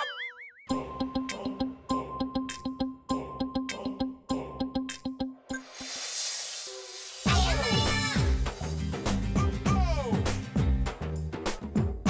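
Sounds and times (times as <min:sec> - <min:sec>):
cartoon wobbling boing: 0:00.0 - 0:00.7
background music with ticking beat: 0:00.7 - 0:05.7, 0:07.3 - 0:12.0.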